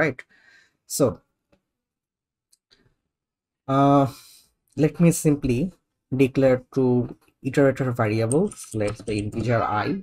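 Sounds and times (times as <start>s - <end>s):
person speaking: 3.7s - 10.0s.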